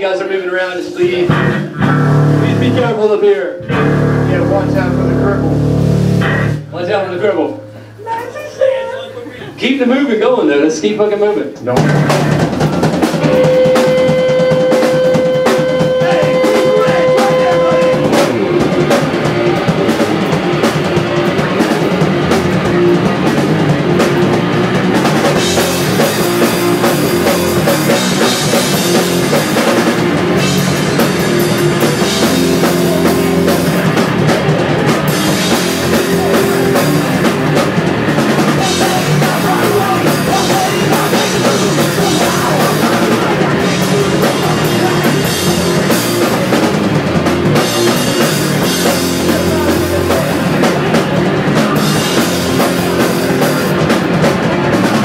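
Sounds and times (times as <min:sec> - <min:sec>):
hardcore punk band playing live: 0:00.0 - 0:09.6, 0:11.5 - 0:55.0.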